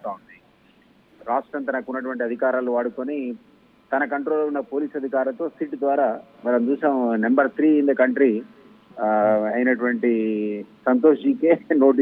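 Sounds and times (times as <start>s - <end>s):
man talking over telephone: 0.0s - 0.4s, 1.2s - 8.4s, 9.0s - 12.0s.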